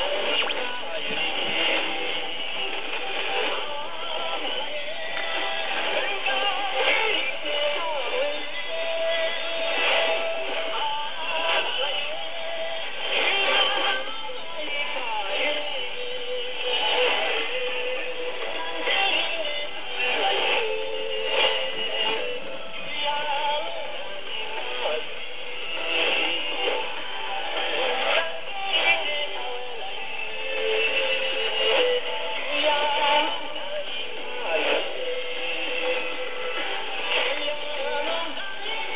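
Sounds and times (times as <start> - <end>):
music with singing over am radio: 0.0 - 38.9.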